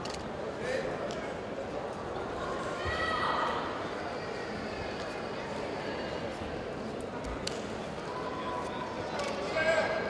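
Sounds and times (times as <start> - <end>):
murmur of crowd in hall: 0.0 - 10.0.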